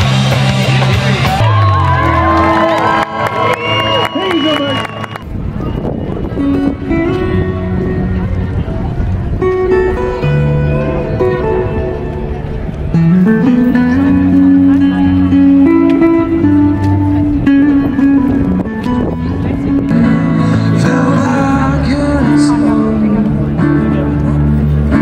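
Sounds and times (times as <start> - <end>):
melody of long held notes: 5.2 - 25.0
amplified acoustic guitar: 5.7 - 25.0.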